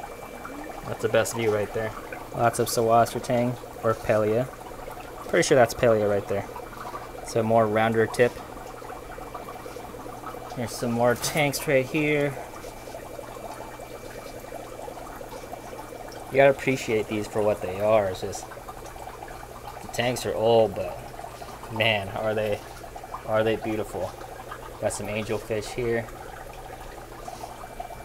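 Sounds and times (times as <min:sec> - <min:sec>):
aquarium water trickling and bubbling: 0:00.0 - 0:28.0
low steady hum: 0:00.0 - 0:28.0.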